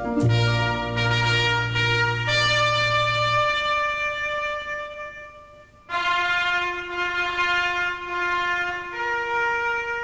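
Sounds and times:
long held trumpet note: 0.0s - 10.0s.

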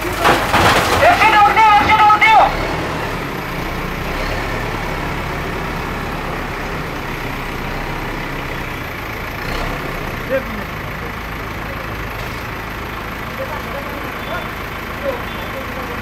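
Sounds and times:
diesel engine running: 0.0s - 16.0s
person shouting: 1.0s - 2.5s.

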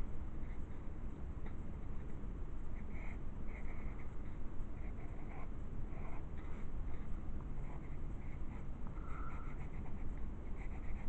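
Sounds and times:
pen scratching on paper: 7.6s - 11.0s.

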